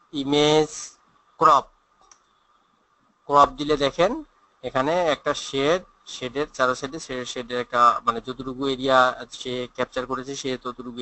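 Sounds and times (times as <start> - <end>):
person speaking: 0.0 - 1.7, 3.3 - 11.0
computer mouse clicks: 2.0 - 2.4.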